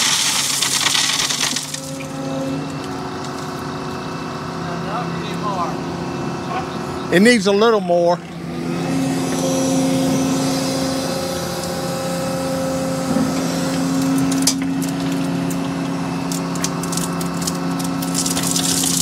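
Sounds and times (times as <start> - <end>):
excavator engine and hydraulics: 0.0 - 19.0.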